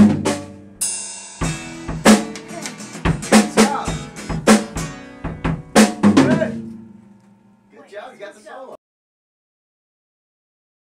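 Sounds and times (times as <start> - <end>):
drum kit crash: 0.0 - 7.0.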